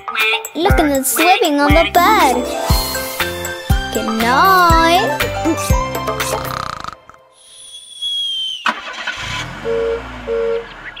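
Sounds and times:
high falling whistle: 7.4s - 8.8s
car engine starting and running: 8.7s - 11.0s.

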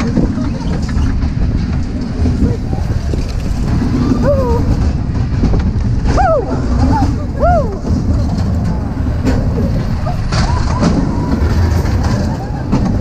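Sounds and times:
roller coaster wheels rumbling: 0.0s - 13.0s.

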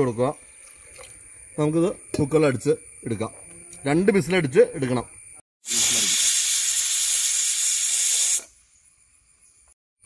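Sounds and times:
pressure cooker steam hissing: 5.6s - 8.5s.

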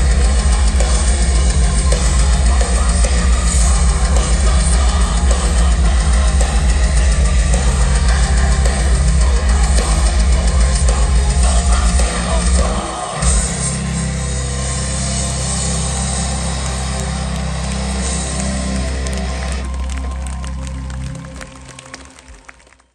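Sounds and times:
industrial metal band playing: 0.0s - 20.8s.

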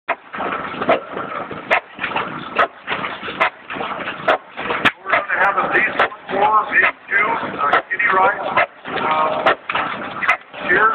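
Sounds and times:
slow engine beating: 0.1s - 10.9s
crowd voices: 0.8s - 10.9s.

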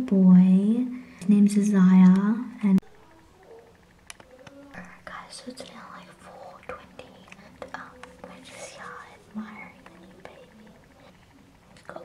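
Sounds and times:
person whispering: 4.7s - 11.2s.

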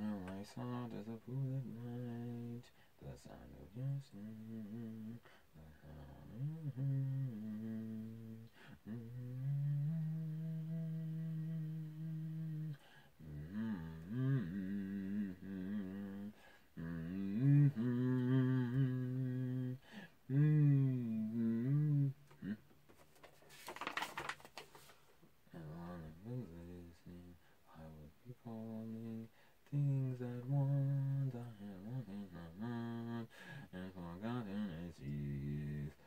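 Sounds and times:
man humming: 4.2s - 22.7s
rustling: 22.3s - 25.2s.

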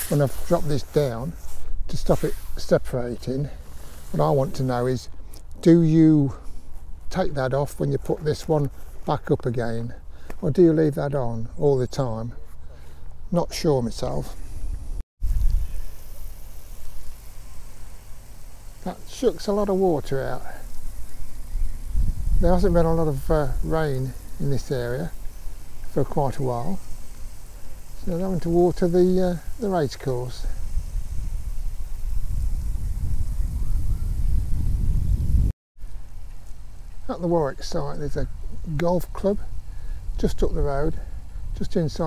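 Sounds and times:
faint steady hiss: 0.0s - 42.0s
wind buffeting microphone: 20.4s - 35.5s.

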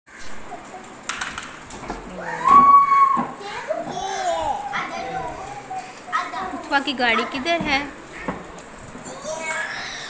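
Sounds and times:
toddler calling and babbling: 2.2s - 7.4s, 8.9s - 10.0s.

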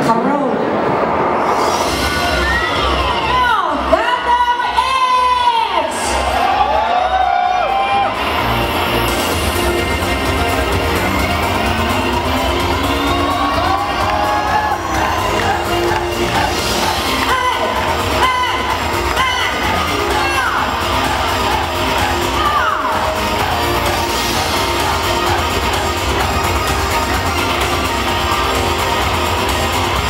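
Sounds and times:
crowd cheering and whooping: 1.0s - 30.0s
pop music: 1.6s - 30.0s.

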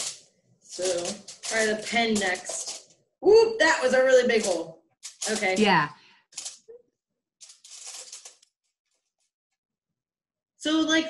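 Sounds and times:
pen poking through foil: 0.0s - 3.0s, 3.8s - 5.7s, 6.3s - 6.7s, 7.4s - 9.0s
tin foil crinkling: 0.0s - 3.0s, 3.8s - 6.8s, 7.4s - 9.3s.

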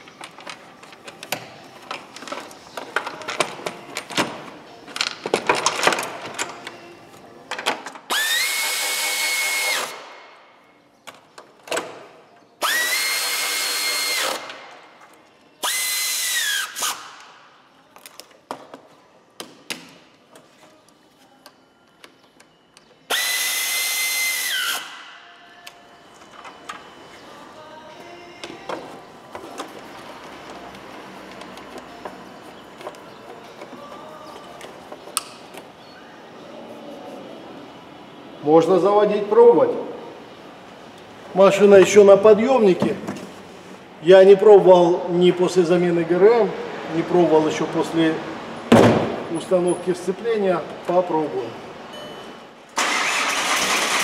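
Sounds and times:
power drill whining: 12.6s - 14.4s.

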